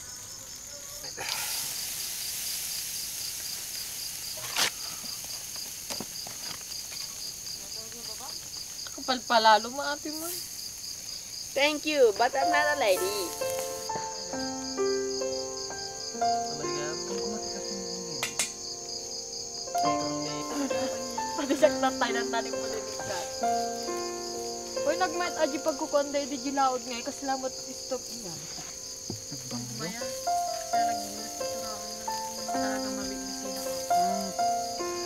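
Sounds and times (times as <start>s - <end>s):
crickets chirping: 0.0s - 35.0s
sharp crack: 3.3s - 6.1s, 18.2s - 18.7s.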